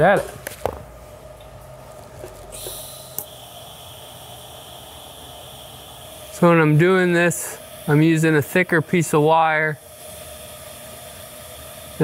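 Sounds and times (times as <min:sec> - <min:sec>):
welding arc hissing: 0:02.4 - 0:12.0.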